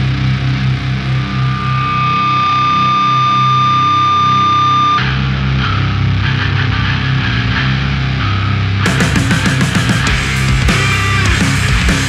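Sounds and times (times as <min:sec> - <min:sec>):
heavy rock band music: 0:00.0 - 0:12.0.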